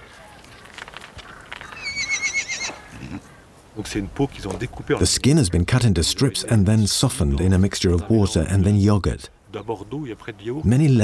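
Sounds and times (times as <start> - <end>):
horse whinnying: 1.6 - 3.3.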